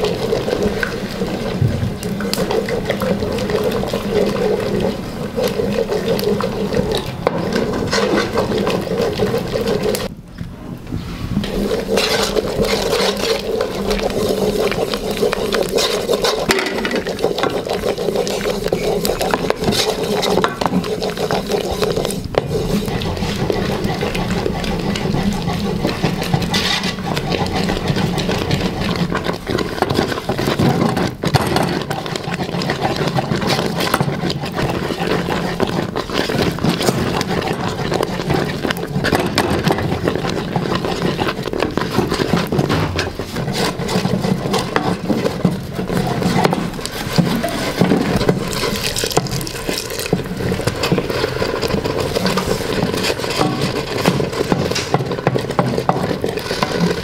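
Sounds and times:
wooden spoon scraping a pot: 0:00.0 - 0:10.1, 0:10.9 - 0:57.0.

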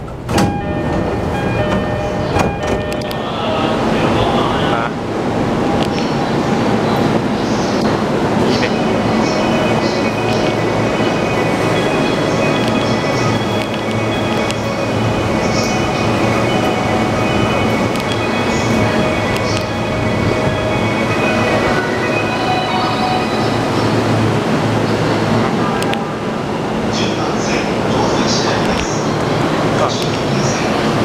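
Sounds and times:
train and crowd noise: 0:00.0 - 0:31.0
steady high tones: 0:00.4 - 0:28.6.

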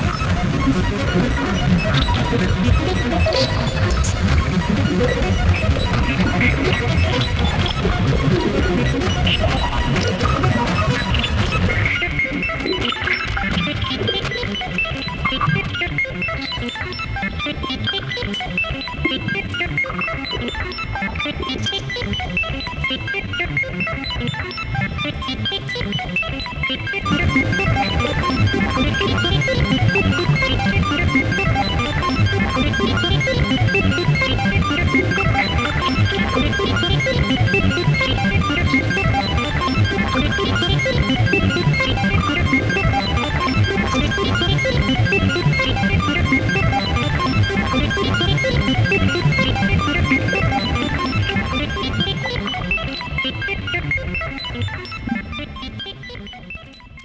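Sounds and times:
synthesizer electronic music: 0:00.0 - 0:57.0.

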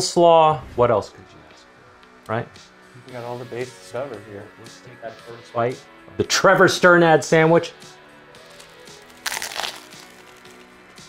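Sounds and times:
quiet background music: 0:00.0 - 0:11.0
crunchy bite into sandwich: 0:08.4 - 0:10.8.

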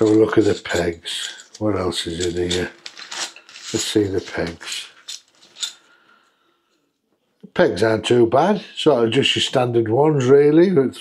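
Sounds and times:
metal tent pegs clinking: 0:00.0 - 0:05.8.

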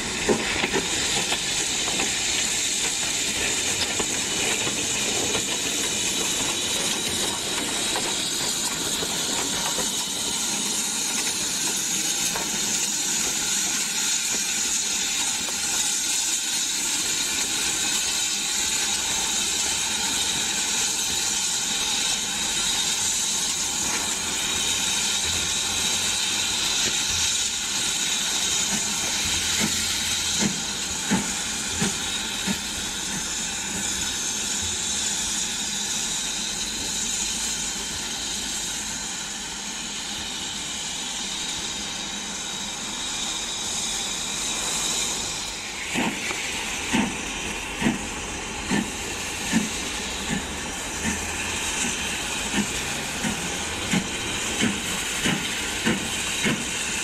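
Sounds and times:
steam locomotive hissing: 0:00.0 - 0:57.0.

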